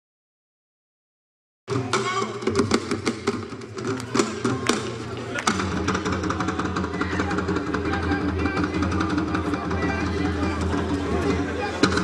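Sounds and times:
drum strokes: 1.7 - 12.0.

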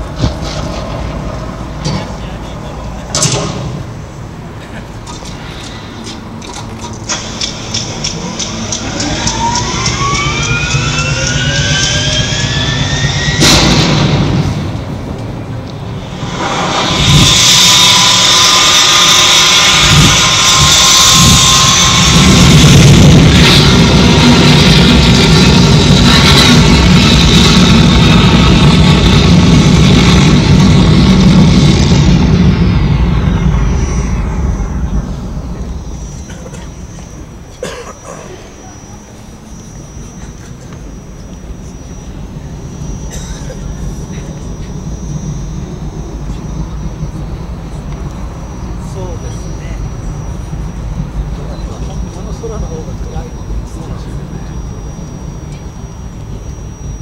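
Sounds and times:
loud sustained rocket-like roar: 0.0 - 57.0
sharp hit: 7.0 - 57.0
rising whistling sweeps: 7.1 - 14.8, 15.8 - 57.0.

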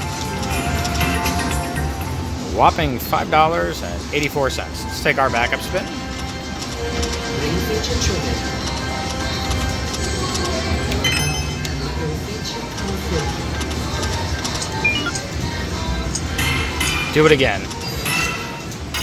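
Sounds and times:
slot machine electronic music: 0.0 - 2.5, 8.8 - 12.3, 13.4 - 15.7.

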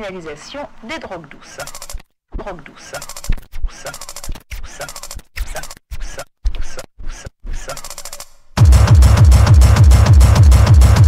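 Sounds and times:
stuttering vocal sample: 1.2 - 8.2
heavy kick drum hits: 8.6 - 11.0.

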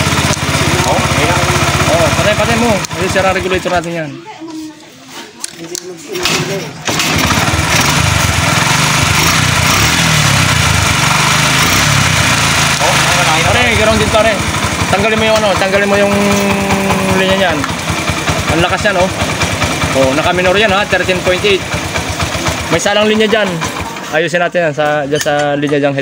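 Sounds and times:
motorcycle engine idling: 0.0 - 3.9, 6.9 - 24.3.

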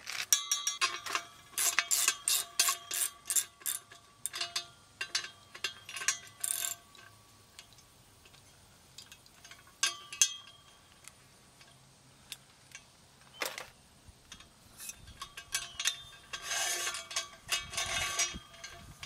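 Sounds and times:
ratchet wrench clicking: 0.1 - 6.8.

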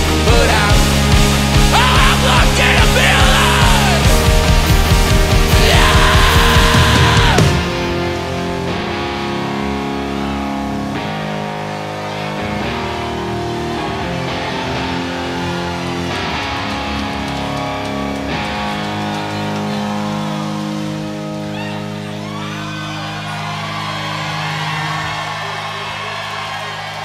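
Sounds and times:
crowd whooping: 0.0 - 27.0
electric guitars ringing chords: 0.0 - 27.0.

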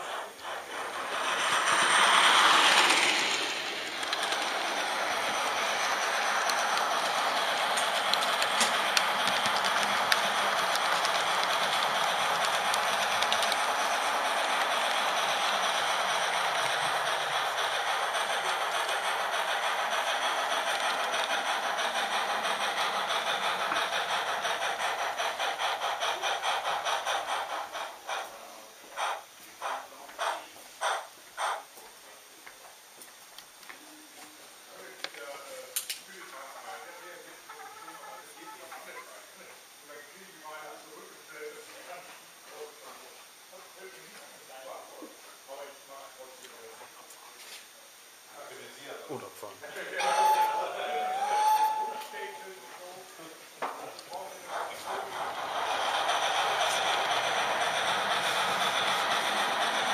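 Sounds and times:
rail clicks: 0.0 - 31.6, 50.0 - 52.5, 53.6 - 59.9
model train motor whirring: 0.0 - 31.7, 49.6 - 59.9.

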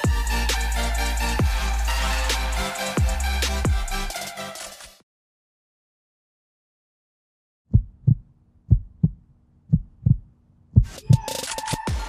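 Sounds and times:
heartbeat thumps: 7.7 - 11.3.

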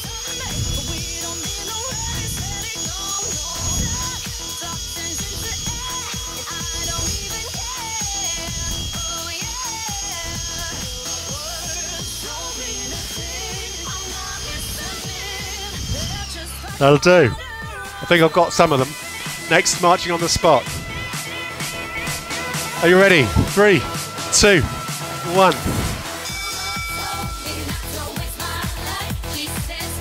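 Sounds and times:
background music: 0.0 - 30.0
handheld vacuum high whine: 0.0 - 30.0.

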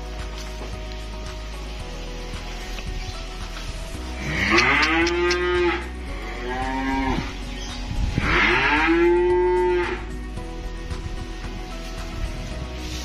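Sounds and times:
cattle mooing: 4.2 - 7.4, 8.2 - 10.0.

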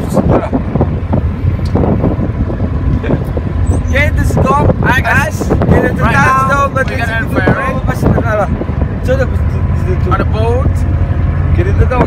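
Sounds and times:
boat engine rumble: 0.0 - 12.0
people speaking: 3.9 - 10.8, 11.6 - 12.0.

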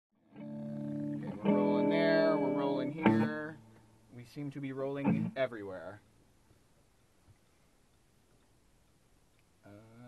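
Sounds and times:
held band chords: 0.4 - 5.8.

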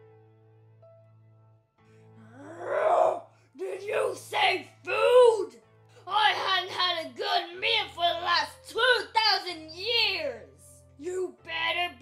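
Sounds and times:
zombie moan rising in pitch: 2.2 - 3.2.

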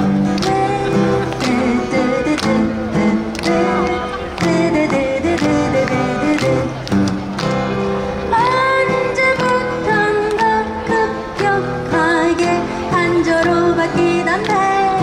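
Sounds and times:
person singing: 0.0 - 6.9, 8.2 - 15.0
acoustic guitars strumming: 0.0 - 15.0.

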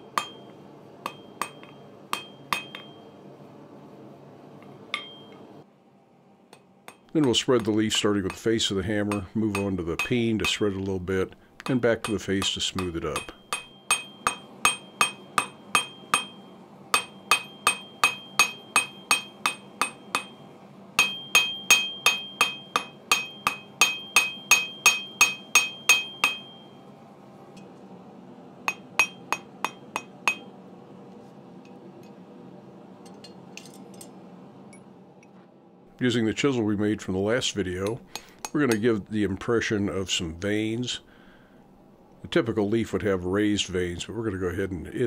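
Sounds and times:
steady low hum: 0.0 - 45.0
hammer ringing on anvil: 0.1 - 3.1, 4.9 - 5.4, 6.9 - 10.8, 11.6 - 26.8, 28.7 - 30.6.

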